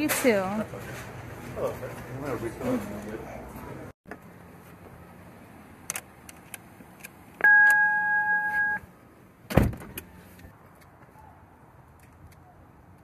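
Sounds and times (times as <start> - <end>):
car electronic chime: 7.4 - 8.8
car door shutting: 9.5 - 10.1.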